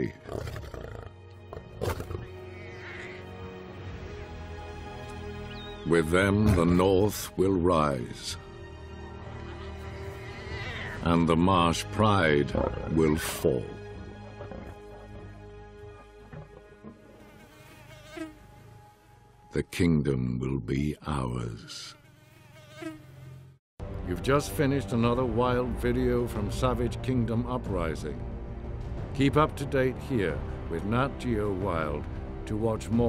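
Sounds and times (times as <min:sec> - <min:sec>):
background music with held notes: 0:00.0 - 0:20.4, 0:23.8 - 0:33.0
lioness snarl: 0:00.2 - 0:02.3, 0:12.5 - 0:13.3
fly buzzing: 0:00.3 - 0:03.7, 0:09.2 - 0:11.1, 0:13.9 - 0:19.3, 0:21.9 - 0:23.6.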